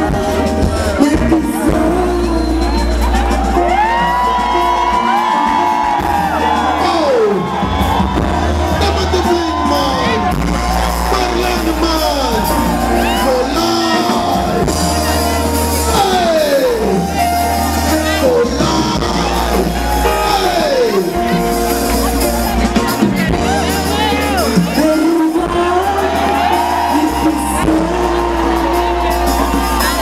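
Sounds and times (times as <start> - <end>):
woman singing: 0.0 - 3.4, 24.7 - 29.2
crowd whooping and cheering: 0.0 - 30.0
live band music: 0.0 - 30.0.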